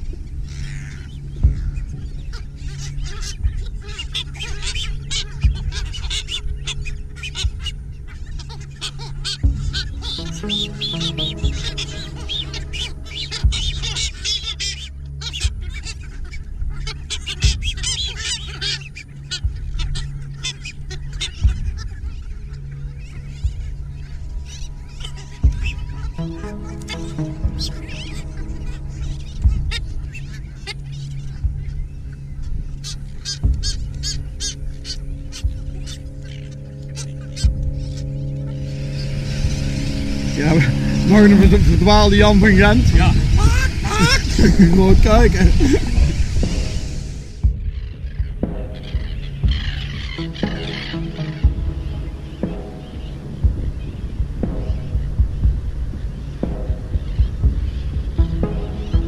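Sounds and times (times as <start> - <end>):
seabird colony calling: 0.0 - 59.0.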